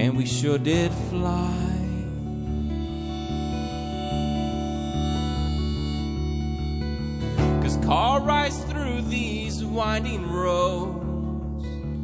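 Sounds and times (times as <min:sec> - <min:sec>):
acoustic guitar strumming: 0:00.0 - 0:12.0
harmonica held notes: 0:01.1 - 0:10.4.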